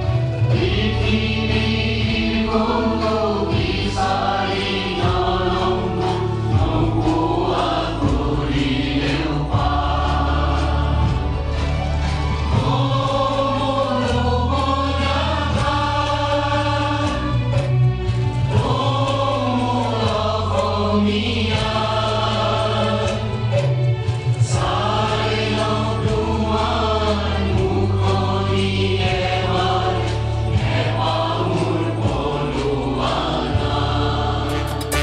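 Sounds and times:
instrumental accompaniment: 0:00.0 - 0:27.8, 0:33.0 - 0:35.0
choir singing anthem: 0:00.0 - 0:35.0.

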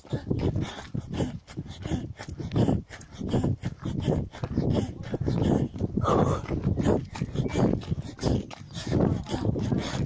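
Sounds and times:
runner breathing hard: 0:00.0 - 0:10.0
woman panting heavily: 0:00.0 - 0:10.0.

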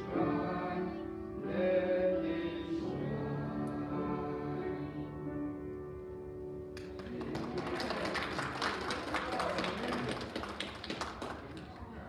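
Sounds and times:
congregation applauding: 0:06.8 - 0:12.0.

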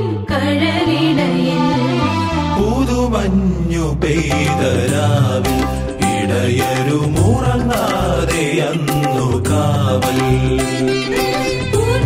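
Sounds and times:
instrumental accompaniment with beat: 0:04.2 - 0:12.0.

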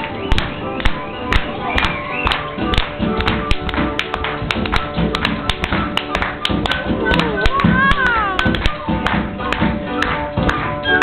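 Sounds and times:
flute: 0:00.0 - 0:03.5, 0:10.7 - 0:11.0
piano: 0:00.0 - 0:11.0
tap shoes on stage floor: 0:00.0 - 0:11.0.

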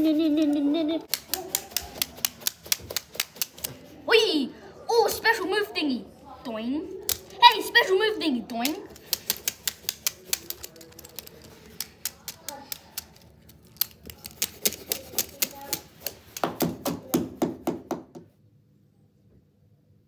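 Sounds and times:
spinning tops clacking together: 0:01.0 - 0:03.7, 0:08.5 - 0:16.5.

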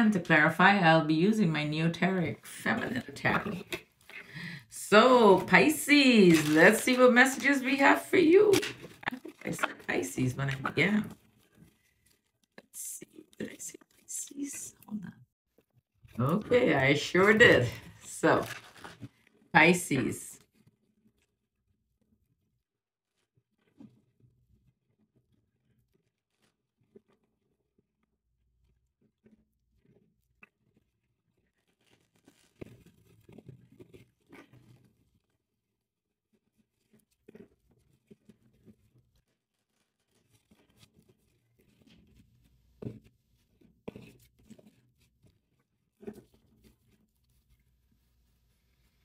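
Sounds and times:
shuffling cards: 0:06.2 - 0:07.6, 0:08.2 - 0:12.3, 0:16.5 - 0:19.2, 0:36.5 - 0:45.3.

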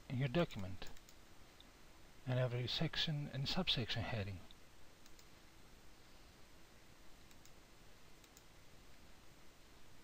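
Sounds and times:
computer mouse clicks: 0:00.9 - 0:01.2, 0:05.0 - 0:05.3, 0:07.2 - 0:07.6, 0:08.2 - 0:08.5.

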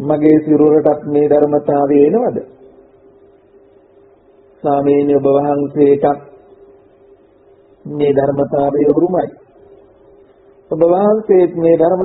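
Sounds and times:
faint steady background tone: 0:00.0 - 0:12.0.

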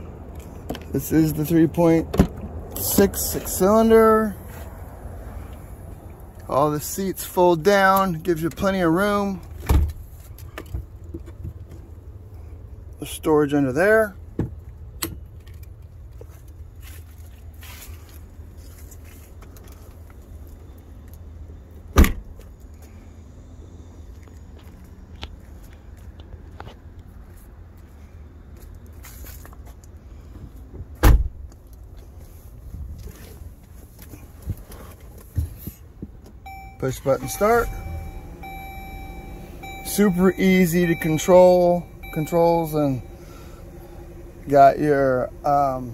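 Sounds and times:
low steady rumble: 0:36.4 - 0:45.9
steady electronic beep tone: 0:36.5 - 0:45.8
car engine idling: 0:36.5 - 0:45.9.

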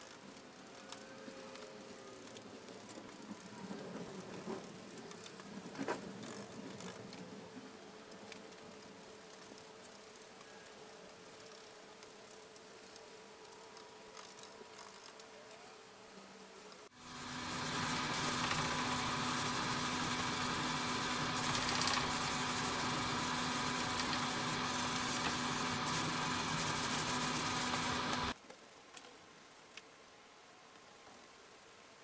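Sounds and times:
electric sander running: 0:17.0 - 0:28.4.

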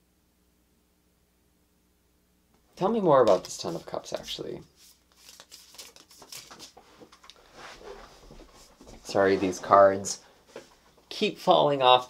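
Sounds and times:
cards being shuffled: 0:03.2 - 0:07.4.

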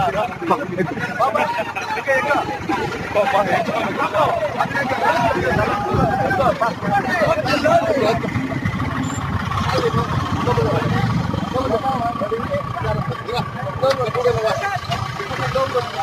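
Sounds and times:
people talking indistinctly: 0:00.0 - 0:16.0.

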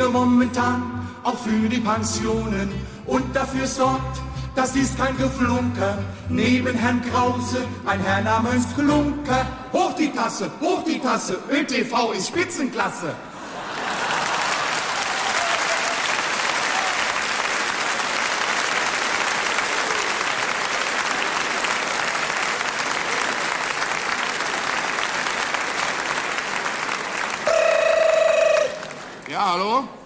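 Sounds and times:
audience applauding: 0:13.4 - 0:29.9.

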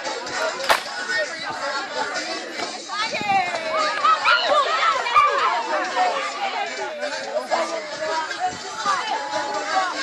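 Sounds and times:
children chattering: 0:00.0 - 0:10.0.

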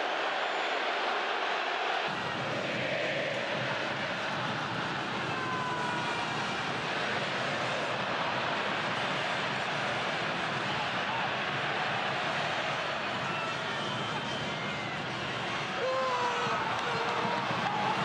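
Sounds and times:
stadium crowd roar: 0:00.0 - 0:18.0
faint short whistles: 0:13.2 - 0:15.7.

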